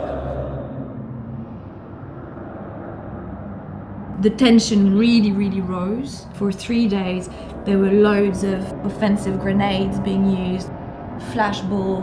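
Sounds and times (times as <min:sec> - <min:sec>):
muffled outdoor rumble: 0:00.0 - 0:12.0.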